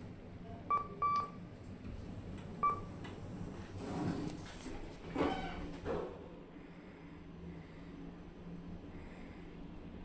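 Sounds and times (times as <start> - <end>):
steady low hum: 0.0 - 5.1, 6.0 - 10.0
lift button beeps: 0.7 - 1.4, 2.6 - 2.9.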